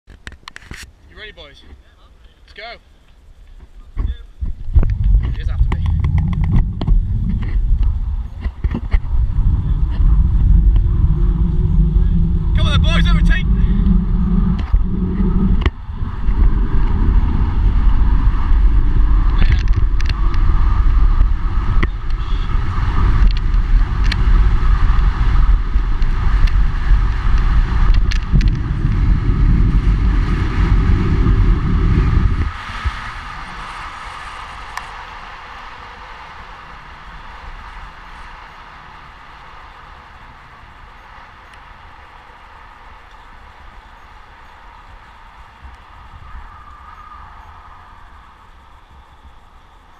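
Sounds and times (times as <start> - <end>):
wind and tyres hissing: 0.1 - 49.9
wind buffeting microphone: 3.6 - 49.9.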